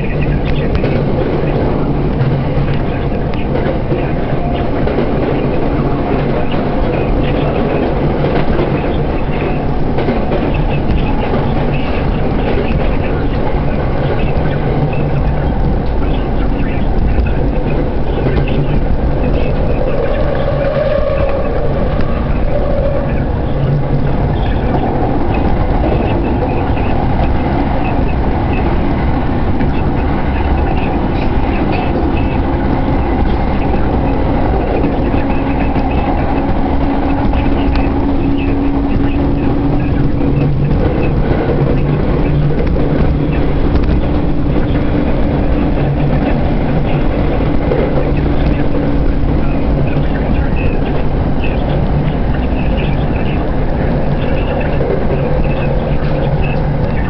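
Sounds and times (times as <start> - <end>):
train rumble inside carriage: 0.0 - 57.0.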